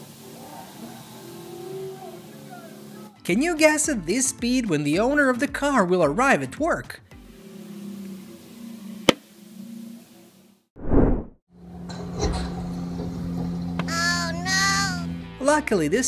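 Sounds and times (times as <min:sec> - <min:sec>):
whoosh transition: 0:10.8 - 0:11.4
low engine-like hum: 0:11.6 - 0:15.4.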